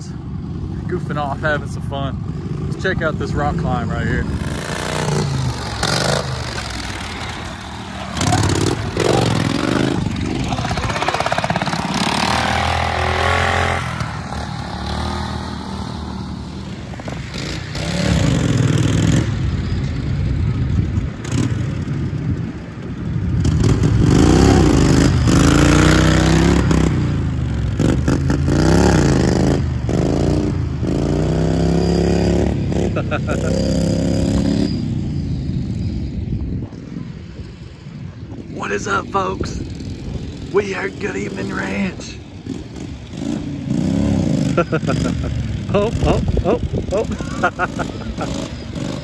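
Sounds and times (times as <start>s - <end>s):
atv engines revving: 0.0s - 49.0s.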